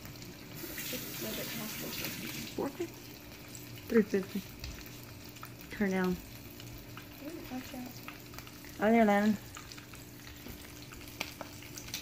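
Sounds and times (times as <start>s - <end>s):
fish sizzling in hot oil: 0.0s - 12.0s
small oil crackles: 0.0s - 12.0s.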